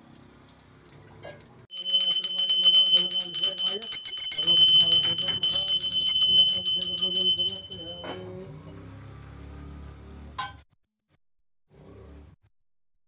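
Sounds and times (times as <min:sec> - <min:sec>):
hand bell ringing rapidly: 0:01.7 - 0:08.2.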